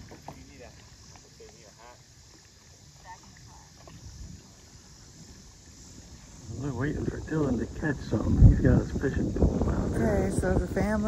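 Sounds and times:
voices calling across water: 0:00.0 - 0:11.0.

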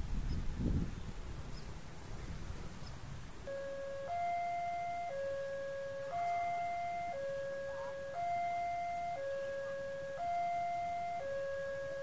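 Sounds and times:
low rumble of traffic: 0:00.0 - 0:12.0
two-tone level crossing alarm: 0:03.4 - 0:12.0.

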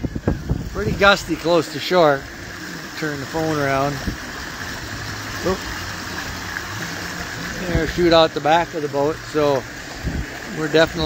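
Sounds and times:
water rushing along boat hull: 0:00.0 - 0:11.0.

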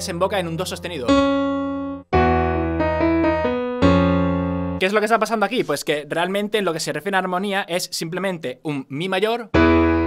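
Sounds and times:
digital piano chords: 0:00.0 - 0:05.4, 0:09.5 - 0:10.0.

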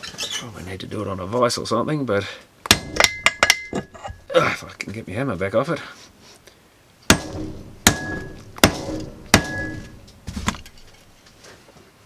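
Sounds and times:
hammer striking metal: 0:02.7 - 0:03.9, 0:07.1 - 0:10.9.

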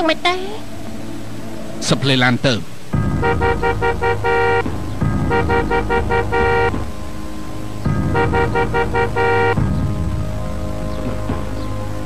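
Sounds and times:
car engine rumble: 0:00.7 - 0:12.0
two-tone car horn beeps: 0:03.2 - 0:06.8, 0:08.1 - 0:09.6.

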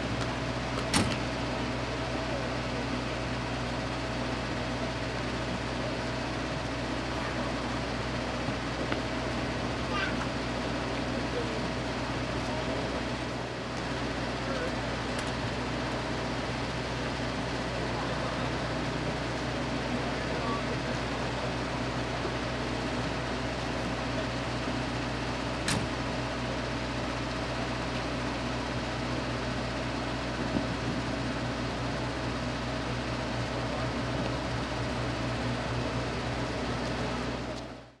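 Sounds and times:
low mechanical hum: 0:00.0 - 0:38.0.

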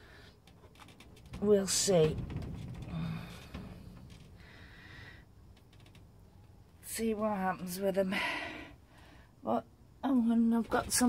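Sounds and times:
woman breathing: 0:00.0 - 0:00.5, 0:02.8 - 0:05.5, 0:08.0 - 0:09.4.

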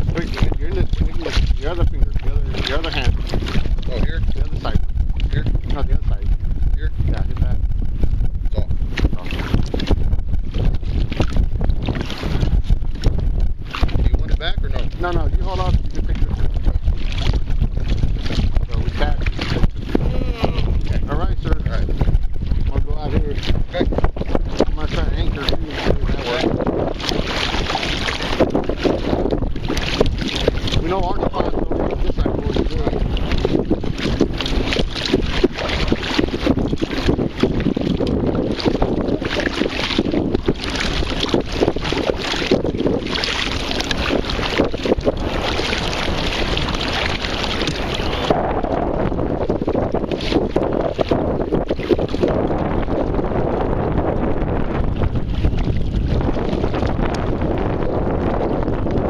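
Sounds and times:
paddle splashing in water: 0:00.0 - 0:59.0
wind buffeting microphone: 0:00.0 - 0:59.0.

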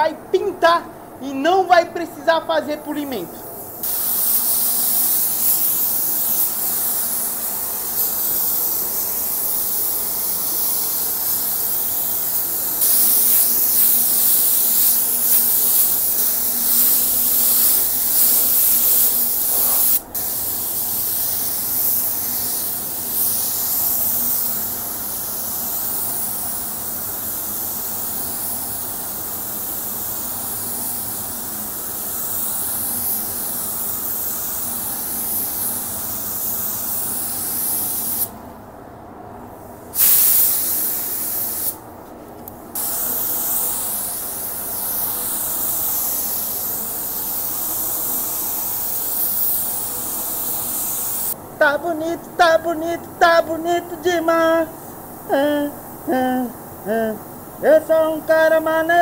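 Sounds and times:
paint spray gun hissing: 0:02.9 - 0:38.3, 0:39.9 - 0:41.8, 0:42.8 - 0:51.4, 0:53.7 - 0:58.8.

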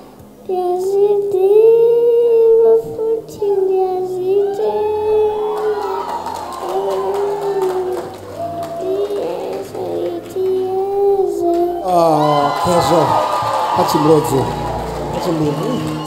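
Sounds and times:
soft musical backing: 0:00.0 - 0:16.0
girl singing held notes: 0:00.4 - 0:12.1.

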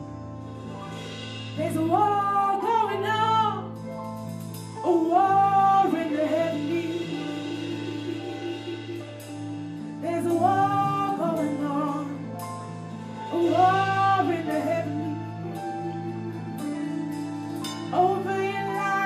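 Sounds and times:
sustained keyboard chords: 0:00.0 - 0:19.0
person singing into a microphone: 0:04.8 - 0:09.2, 0:10.0 - 0:12.3, 0:13.2 - 0:19.0.

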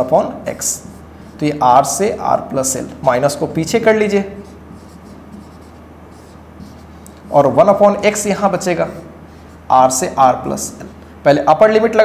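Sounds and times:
steady low hum: 0:00.0 - 0:12.0
marker writing on whiteboard: 0:00.6 - 0:08.7.

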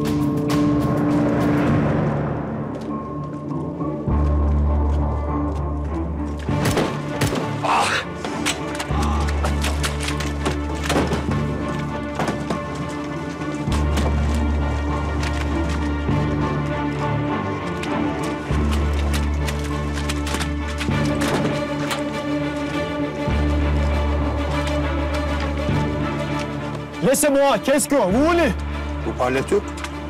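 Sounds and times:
dramatic film score: 0:00.0 - 0:30.0.

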